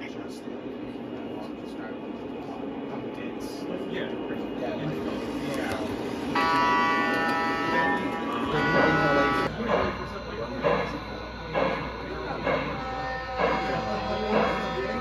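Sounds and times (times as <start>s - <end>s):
model steam locomotive chuffing: 3.3s - 15.0s
model locomotive horn: 6.3s - 9.6s, 12.3s - 15.0s.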